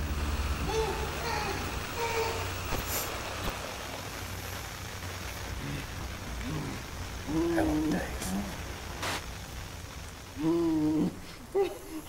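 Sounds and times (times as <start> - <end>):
low rumbling ambience: 0.0 - 12.0
muffled vocal sounds: 5.5 - 9.2, 10.4 - 12.0.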